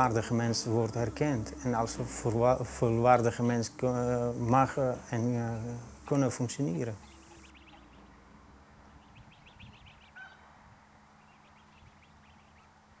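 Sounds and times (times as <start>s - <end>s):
faint bird chirps: 3.4s - 10.5s, 11.2s - 13.0s.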